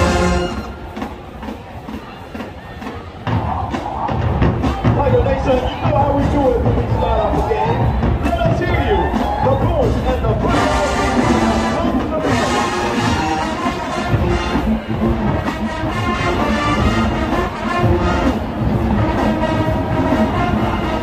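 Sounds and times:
crowd voices: 0.0s - 21.0s
marching band playing: 0.0s - 21.0s.

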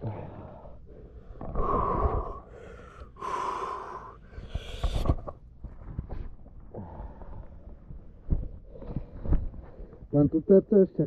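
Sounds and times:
man gasping and breathing hard: 0.0s - 5.2s.

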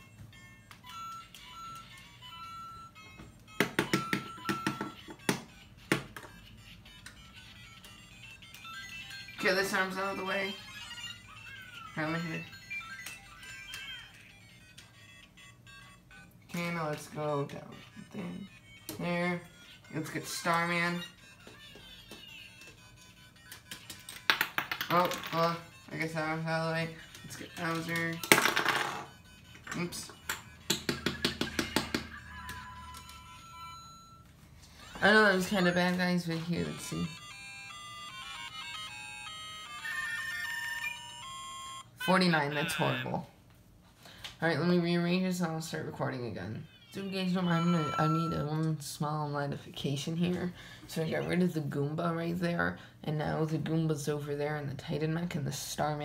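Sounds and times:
toy speaker beeping tune: 0.0s - 24.3s, 24.9s - 43.2s, 46.6s - 48.7s.

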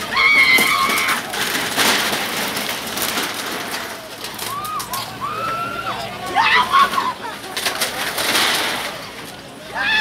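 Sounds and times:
wooden shack crashing apart: 0.0s - 4.9s
crowd shouting: 4.4s - 7.4s.

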